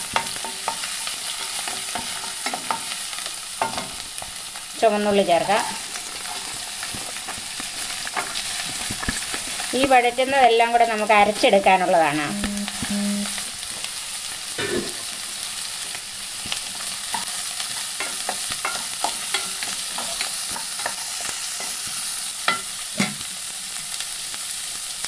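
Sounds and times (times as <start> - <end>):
spatula scraping and tapping pan: 0.0 - 4.4, 5.3 - 10.0, 16.4 - 23.3
shallots sizzling in oil: 0.0 - 25.0.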